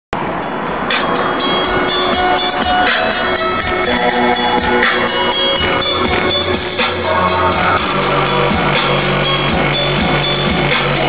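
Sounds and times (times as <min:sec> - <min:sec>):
loud music from car audio system: 0:00.2 - 0:11.0.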